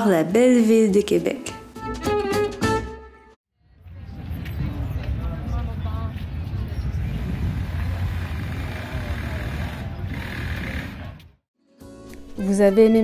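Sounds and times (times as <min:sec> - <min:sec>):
low traffic rumble: 0:03.6 - 0:11.4
voices of passers-by: 0:03.7 - 0:11.4.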